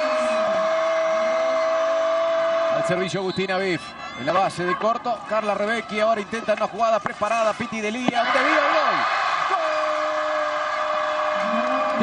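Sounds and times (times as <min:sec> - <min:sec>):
crowd noise: 0:00.0 - 0:12.0.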